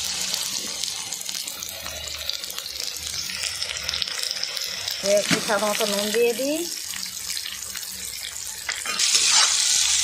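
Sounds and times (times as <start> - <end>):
onions sizzling in hot oil: 0.0 - 10.0
steel spatula scraping a wok: 8.8 - 10.0.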